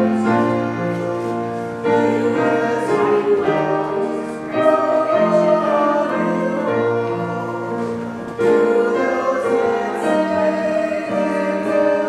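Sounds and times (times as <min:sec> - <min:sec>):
church singing with instruments: 0:00.0 - 0:12.0.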